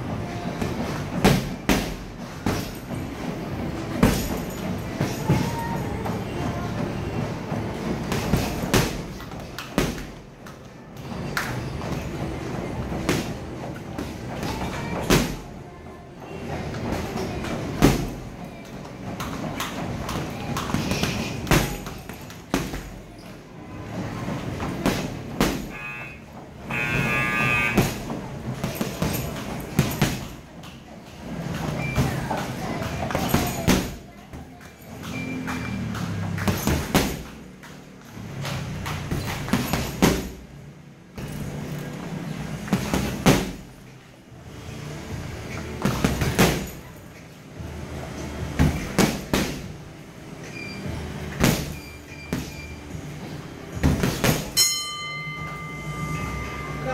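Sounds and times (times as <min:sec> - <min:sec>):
boxing gloves punching heavy bag: 0:00.4 - 0:07.0, 0:07.6 - 0:10.2, 0:11.8 - 0:15.5, 0:16.7 - 0:18.4, 0:19.2 - 0:23.2, 0:24.1 - 0:30.5, 0:31.4 - 0:34.2, 0:34.9 - 0:37.5, 0:38.3 - 0:40.5, 0:42.6 - 0:43.7, 0:45.7 - 0:46.9, 0:48.4 - 0:49.8, 0:51.3 - 0:52.7, 0:53.7 - 0:54.8.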